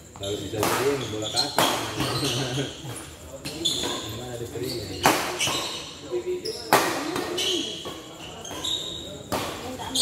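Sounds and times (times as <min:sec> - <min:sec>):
sneakers squeaking on court: 0:00.0 - 0:10.0
racket striking shuttlecock: 0:00.6 - 0:01.0, 0:05.0 - 0:05.8, 0:06.7 - 0:08.6.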